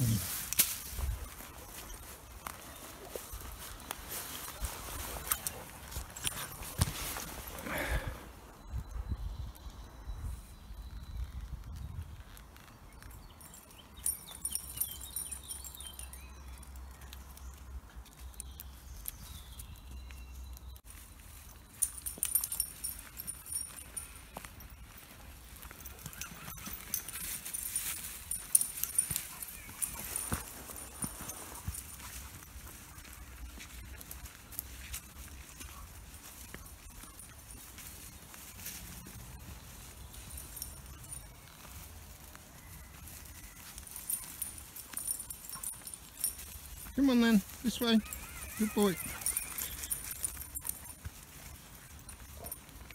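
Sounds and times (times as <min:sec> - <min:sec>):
rustling: 0:00.0 - 0:08.5, 0:10.3 - 0:52.9
footsteps on woodland path: 0:00.0 - 0:52.9.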